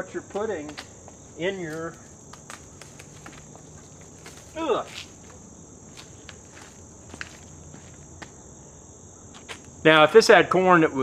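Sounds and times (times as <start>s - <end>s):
high-pitched insect chorus: 0.0s - 11.0s
plant rustling and clicking: 1.5s - 5.4s.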